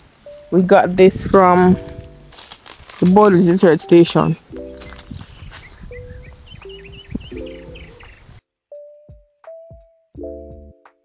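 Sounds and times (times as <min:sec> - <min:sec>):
slow music with held chords: 0:00.0 - 0:05.3, 0:05.9 - 0:08.1, 0:08.7 - 0:11.0
open field ambience: 0:00.0 - 0:08.4
birds chirping: 0:03.0 - 0:08.4.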